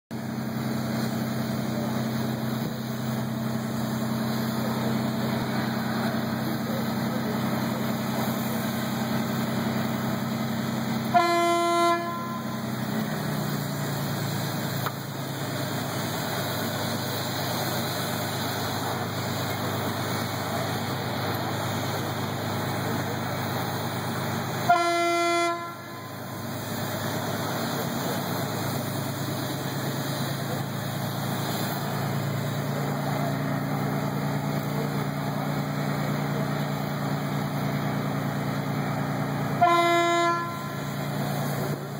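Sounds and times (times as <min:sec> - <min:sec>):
machinery humming: 0:00.1 - 0:41.9
horn blasts: 0:11.0 - 0:12.7, 0:24.6 - 0:26.5, 0:39.6 - 0:41.0.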